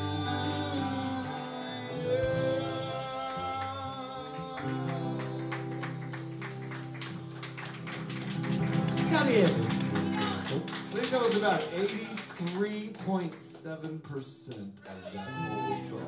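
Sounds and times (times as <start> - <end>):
person singing: 0.0 - 6.4
acoustic guitars strumming: 0.0 - 13.6
drums: 0.0 - 13.6
bass: 0.0 - 14.0.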